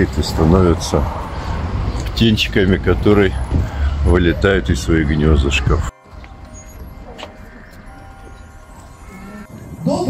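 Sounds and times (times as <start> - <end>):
distant crowd voices: 0.0 - 9.5.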